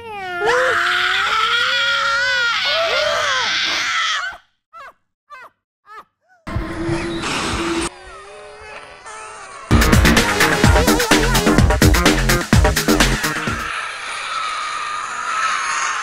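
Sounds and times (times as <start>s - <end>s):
voices wailing and howling: 6.5s - 11.8s, 12.9s - 16.0s.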